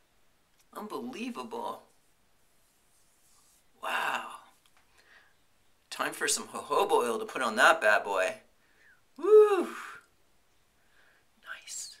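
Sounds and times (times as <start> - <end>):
breathy whisper: 11.1 - 12.0.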